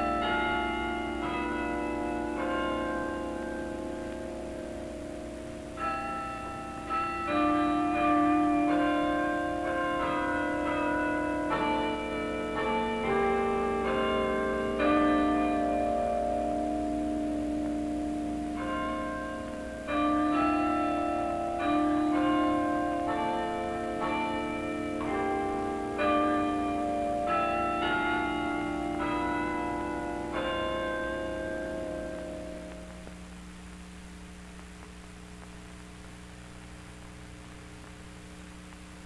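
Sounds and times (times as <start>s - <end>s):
tower bells ringing: 0.0s - 33.3s.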